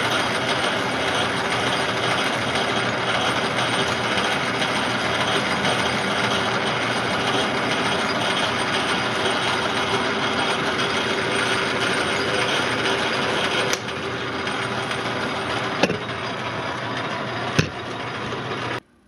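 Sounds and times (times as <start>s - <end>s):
lathe gear noise: 0.0s - 18.8s.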